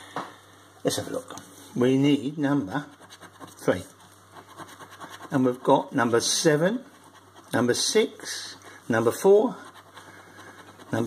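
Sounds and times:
coin scraping scratchcard: 4.4s - 5.4s.

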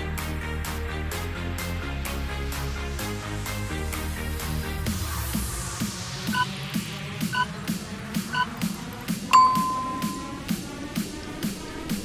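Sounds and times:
short timer beep: 9.3s - 10.4s
electronic dance music: 9.3s - 10.5s
long timer beep: 9.3s - 10.5s.

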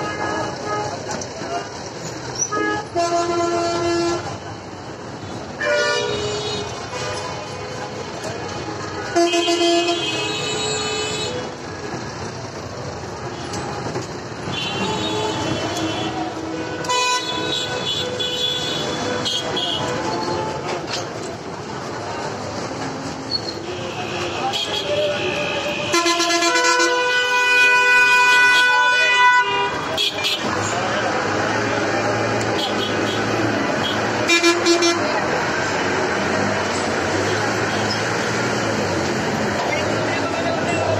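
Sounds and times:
street traffic noise: 0.0s - 40.9s
vehicle horns tooting: 2.4s - 4.4s, 5.3s - 7.8s, 8.5s - 11.6s, 13.3s - 20.8s, 23.3s - 30.7s, 32.5s - 35.4s.

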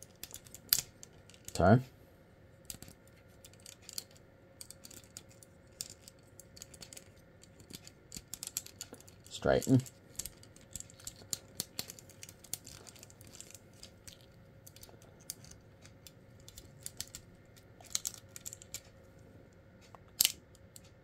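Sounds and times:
plastic toy parts clicking: 0.0s - 1.6s, 2.6s - 18.9s, 20.1s - 21.0s.

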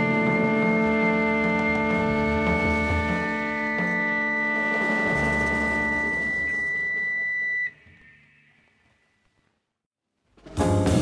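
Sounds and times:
jazz ensemble holding a chord: 0.0s - 5.0s.

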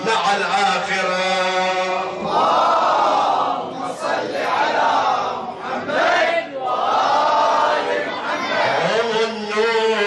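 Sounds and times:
crowd chanting in unison: 0.0s - 10.0s.

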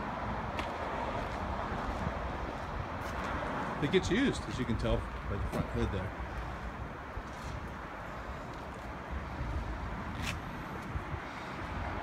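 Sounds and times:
man's voice: 3.8s - 6.2s.

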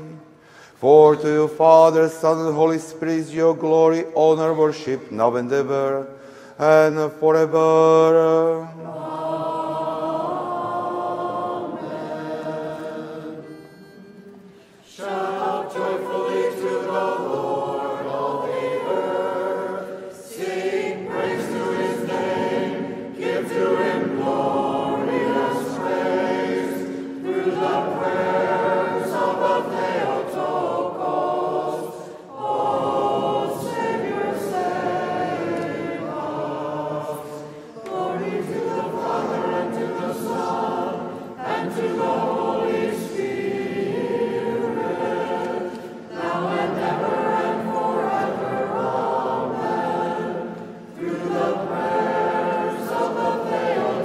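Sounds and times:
voices chanting together: 0.0s - 54.0s.

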